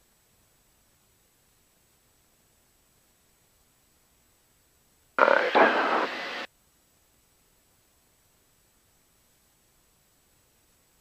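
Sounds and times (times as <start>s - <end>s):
voice over aircraft radio: 5.2s - 6.5s.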